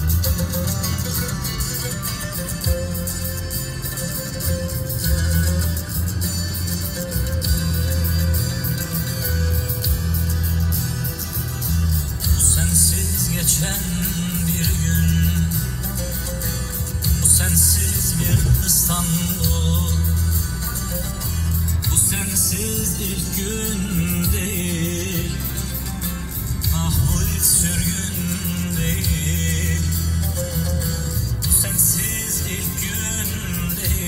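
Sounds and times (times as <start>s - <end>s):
instrumental music with deep bass: 0.0s - 34.0s.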